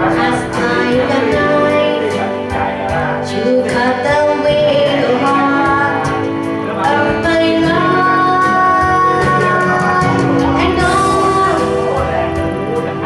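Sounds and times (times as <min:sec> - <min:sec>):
instrumental backing music with guitar: 0:00.0 - 0:13.0
woman singing pop song: 0:00.0 - 0:13.0.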